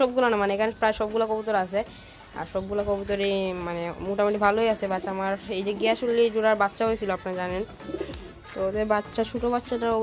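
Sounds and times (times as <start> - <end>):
voice: 0.0 - 7.7, 8.5 - 10.0
pigeons cooing: 4.3 - 8.8.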